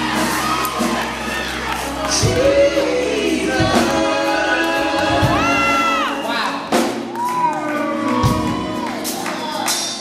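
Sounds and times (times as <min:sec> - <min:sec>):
congregation shouting and cheering: 0:00.0 - 0:10.0
keyboards and drums: 0:00.0 - 0:10.0.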